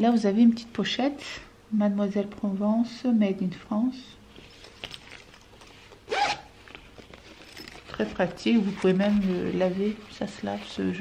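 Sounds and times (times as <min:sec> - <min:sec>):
fabric handling: 0:04.3 - 0:11.0
zipper pulled open: 0:06.0 - 0:09.6.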